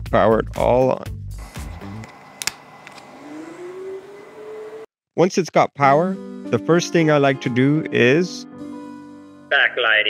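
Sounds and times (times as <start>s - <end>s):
rising electronic whine: 1.4s - 4.9s.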